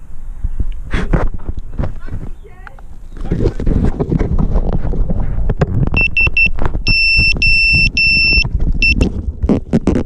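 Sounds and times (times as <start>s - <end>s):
wind on microphone: 0.0s - 10.0s
high drone beeps: 6.0s - 9.1s.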